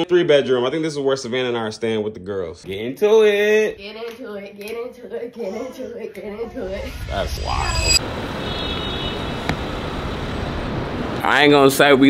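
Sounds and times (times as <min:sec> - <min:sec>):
street traffic hum: 0:08.0 - 0:12.0.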